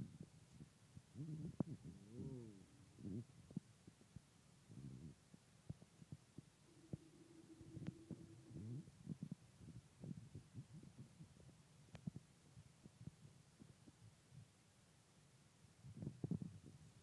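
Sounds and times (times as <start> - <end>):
faint low thumps: 0.0 - 11.4
faint hum-like tone: 0.0 - 17.0.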